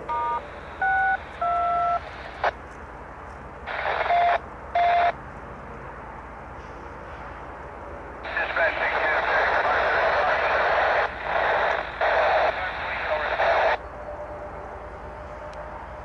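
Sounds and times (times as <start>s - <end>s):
radio transmission over scanner: 0.1s - 2.6s, 3.7s - 5.2s, 8.2s - 13.8s.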